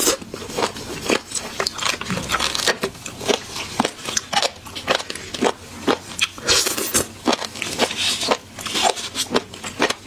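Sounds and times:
chewing seafood crunch: 0.0 - 10.0.

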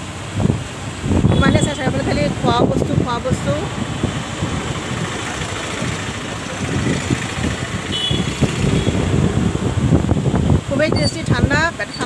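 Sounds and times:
electric fan blowing: 0.0 - 11.9
air buffeting microphone: 0.0 - 12.0.

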